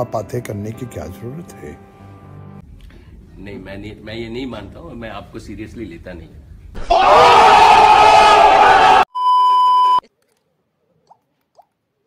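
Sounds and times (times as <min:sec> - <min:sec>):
distorted shouting: 0:06.8 - 0:09.1
electronic beep: 0:09.2 - 0:10.0.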